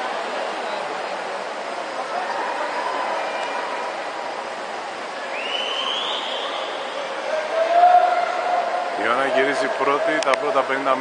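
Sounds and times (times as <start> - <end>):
spectators cheering: 1.9 - 10.8
loud held shout: 5.8 - 10.2.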